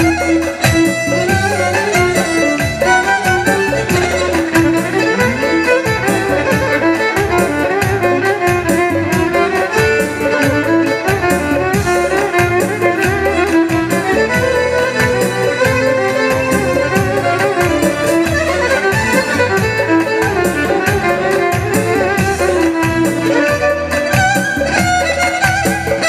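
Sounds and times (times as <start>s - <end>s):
electric violin melody: 0.0s - 26.0s
steady drum beat: 0.0s - 26.0s
synthesizer accompaniment: 0.0s - 26.0s.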